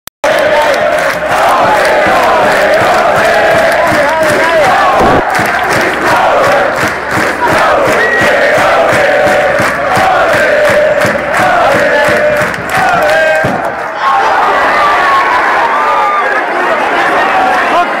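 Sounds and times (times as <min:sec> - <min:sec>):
stadium crowd chanting and singing: 0:00.2 - 0:18.0.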